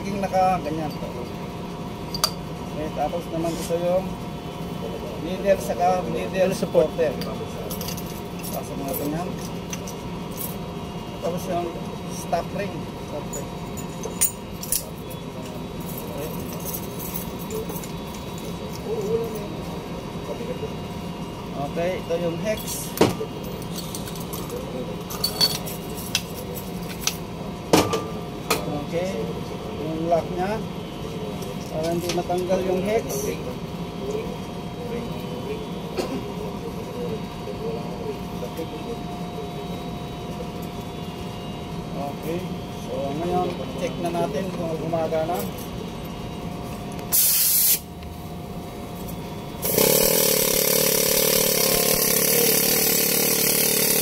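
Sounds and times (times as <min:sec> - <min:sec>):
pneumatic needle scaler running: 0:42.3 - 0:48.0, 0:48.9 - 0:54.0
exhaust air hissing: 0:47.1 - 0:47.9.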